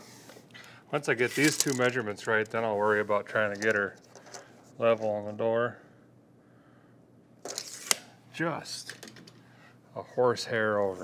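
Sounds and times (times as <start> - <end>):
tape measure blade retracting: 1.3 - 2.0, 7.5 - 8.1.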